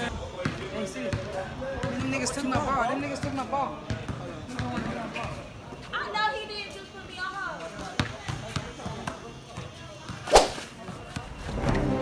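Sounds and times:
loud sharp smack: 0:10.3 - 0:10.7.

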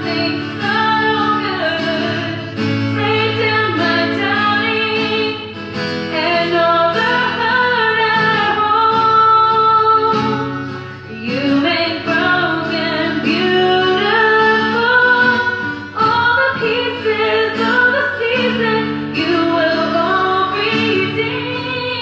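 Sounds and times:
guitar accompaniment: 0:00.0 - 0:22.0
woman singing: 0:00.0 - 0:22.0.

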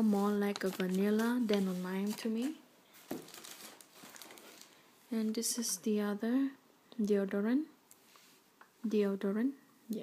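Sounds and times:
packaging rustling and crinkling: 0:00.0 - 0:04.9.

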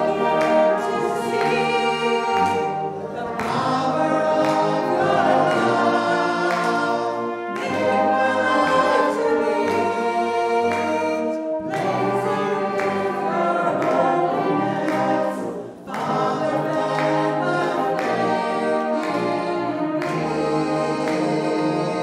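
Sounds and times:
brass band playing: 0:00.0 - 0:22.0
congregation singing a hymn: 0:00.0 - 0:22.0.

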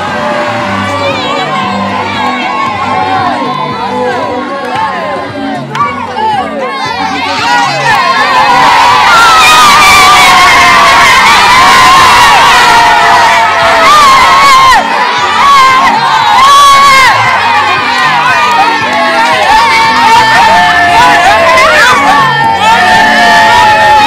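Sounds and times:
children shouting and cheering: 0:00.0 - 0:24.0.

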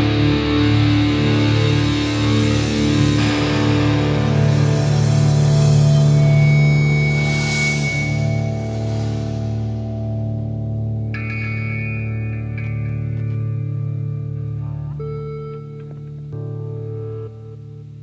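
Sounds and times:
distorted electric guitar chord: 0:00.0 - 0:18.0
higher ringing guitar notes: 0:00.0 - 0:18.0.

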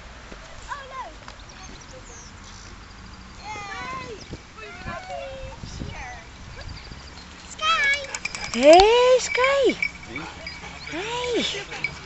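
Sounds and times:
husky whining: 0:06.4 - 0:12.0
husky woo calls: 0:07.6 - 0:12.0.

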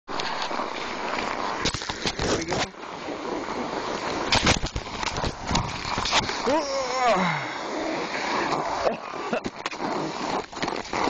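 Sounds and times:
rushing noise over microphone: 0:00.1 - 0:11.0.

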